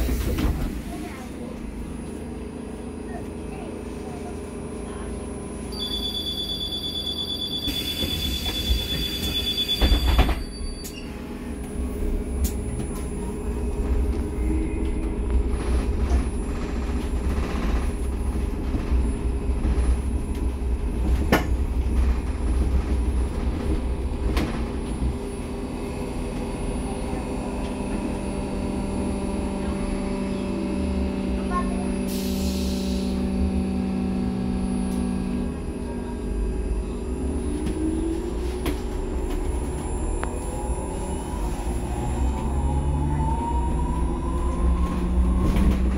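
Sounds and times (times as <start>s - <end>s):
electric bus motor hum: 0.0s - 45.9s
bus doors closing with a hiss: 32.0s - 33.2s.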